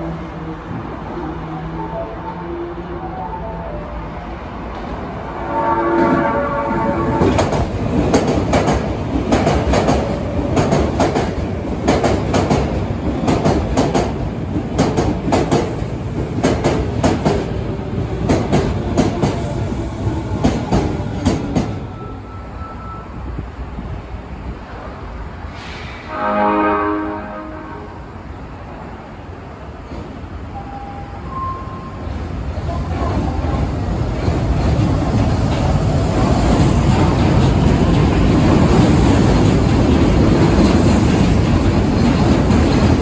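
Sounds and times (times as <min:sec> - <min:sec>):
train horn: 0:05.4 - 0:07.6, 0:26.0 - 0:28.2
train wheels clacking on rail joints: 0:07.1 - 0:19.6, 0:20.2 - 0:21.8, 0:32.8 - 0:43.0.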